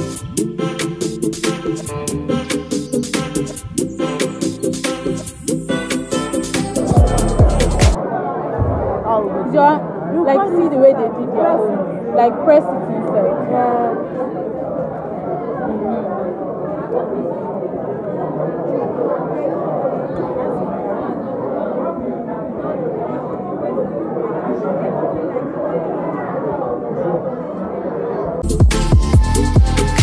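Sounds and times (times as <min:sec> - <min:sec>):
hubbub of overlapping voices: 0:00.0 - 0:28.6.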